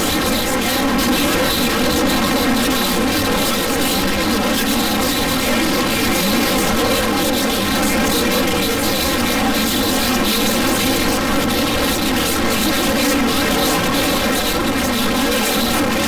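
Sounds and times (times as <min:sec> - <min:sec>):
loud buzzing drone: 0:00.0 - 0:16.0.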